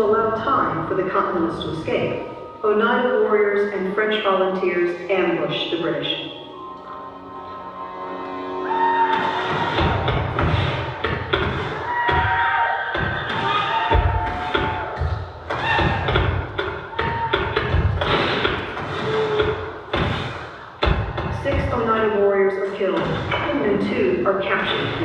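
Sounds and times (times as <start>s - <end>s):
dramatic film music: 0.0s - 25.0s.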